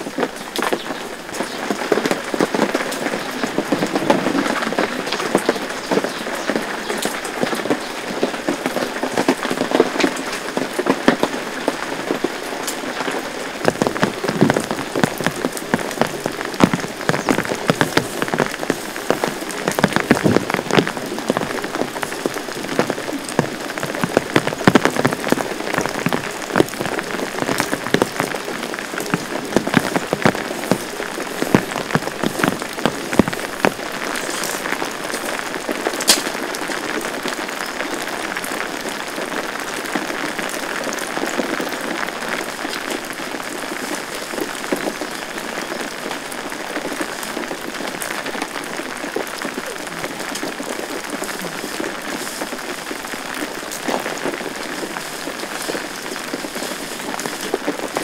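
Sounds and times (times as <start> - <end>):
heavy rain falling: 0.0 - 58.0
raindrops hitting close by: 0.0 - 58.0.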